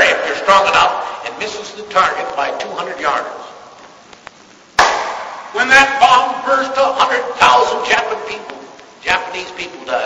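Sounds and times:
man speaking: 0.0 - 3.6, 5.5 - 10.0.

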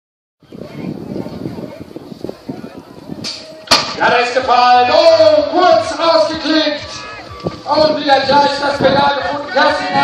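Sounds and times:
murmur of voices: 0.4 - 10.0.

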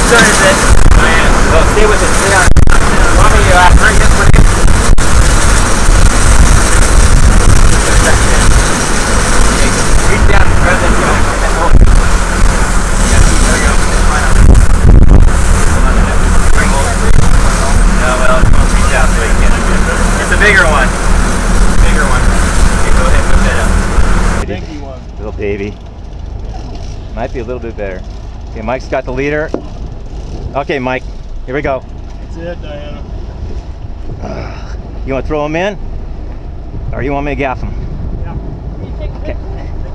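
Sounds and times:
wind on microphone: 0.0 - 24.6, 29.5 - 32.0, 33.0 - 35.0, 35.8 - 39.9
boat engines running: 0.0 - 39.9
boat wake rushing: 0.0 - 39.9.

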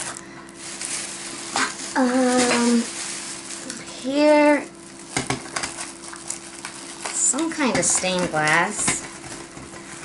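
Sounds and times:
plastic bag rustling and crinkling: 0.0 - 10.0.

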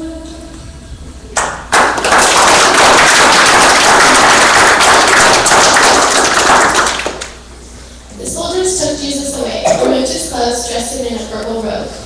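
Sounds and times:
congregation applause: 1.4 - 7.4.

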